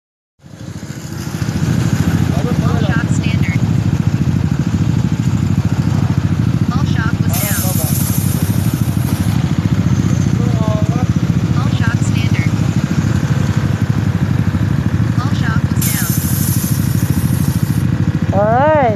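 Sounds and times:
scooter engine running: 0:00.4 - 0:18.9
air suspension hiss: 0:07.3 - 0:09.4, 0:15.8 - 0:17.9.

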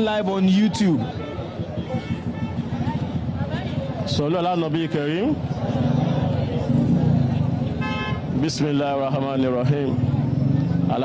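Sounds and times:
muffled voices rumble: 0:00.1 - 0:07.8
vehicle horn toot: 0:01.2 - 0:02.8, 0:07.8 - 0:08.3.

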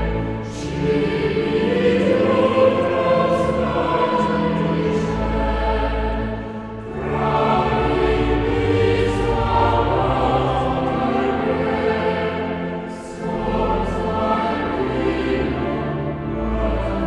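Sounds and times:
choir singing sustained chords: 0:00.0 - 0:17.0.

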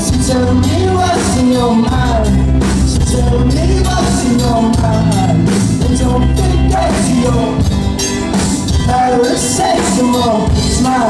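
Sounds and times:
drum kit: 0:00.0 - 0:11.0
guitar: 0:00.0 - 0:11.0
man singing lead vocal: 0:00.0 - 0:11.0.

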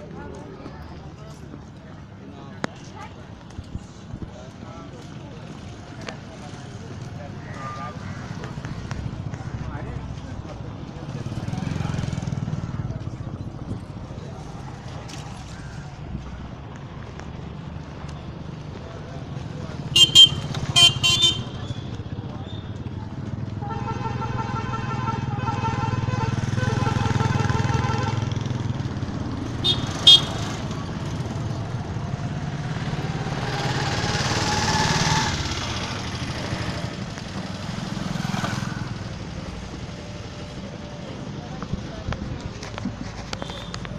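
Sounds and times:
traffic engine rumble: 0:00.0 - 0:43.9
short horn toots: 0:29.6 - 0:30.6.

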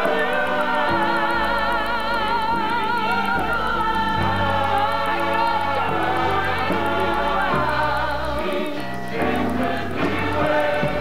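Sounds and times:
choir singing gospel: 0:00.0 - 0:11.0.

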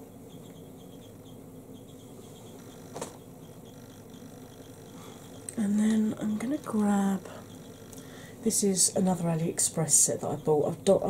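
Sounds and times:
soft rhythmic brushing: 0:01.8 - 0:11.0.

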